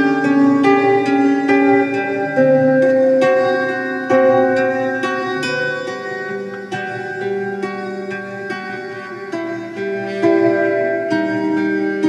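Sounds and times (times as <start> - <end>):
acoustic guitar fingerpicked: 0.0 - 12.0.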